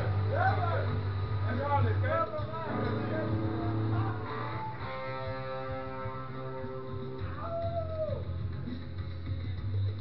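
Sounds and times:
guitar chord ringing: 0:02.4 - 0:07.3.

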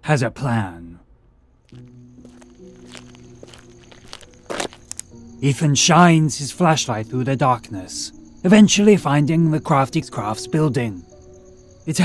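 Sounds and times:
footsteps walking: 0:01.7 - 0:05.2.

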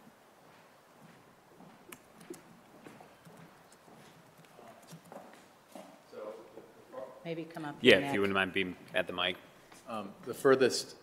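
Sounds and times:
footsteps on hard floor: 0:00.4 - 0:06.0
light knocks and shuffles: 0:00.4 - 0:06.6.

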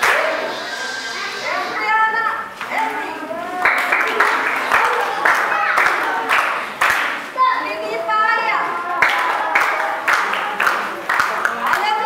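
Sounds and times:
children's voices: 0:00.0 - 0:12.0.

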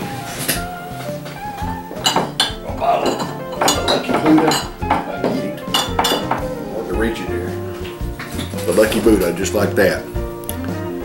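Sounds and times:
background music: 0:00.0 - 0:11.0
glass bottles clinking: 0:01.3 - 0:06.6, 0:07.7 - 0:09.7.

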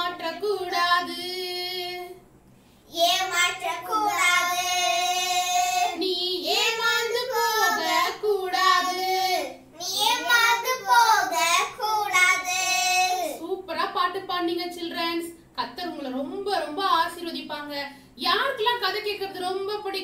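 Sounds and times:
young girls singing: 0:03.0 - 0:09.5.

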